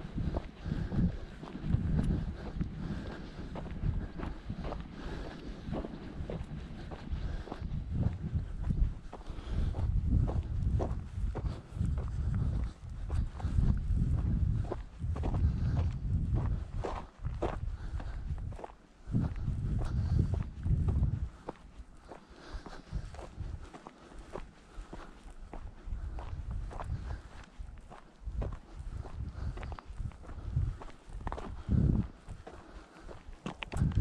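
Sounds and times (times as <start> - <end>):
low rumble: 0.0 - 21.4
footsteps crunching on dry soil: 0.0 - 34.0.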